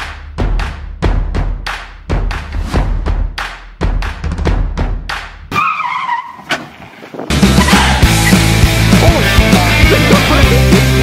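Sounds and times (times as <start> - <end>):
backing music with drum beat: 0.0 - 5.5, 7.3 - 11.0
car tyres squealing: 5.5 - 8.6
loud distorted rock music: 7.3 - 11.0.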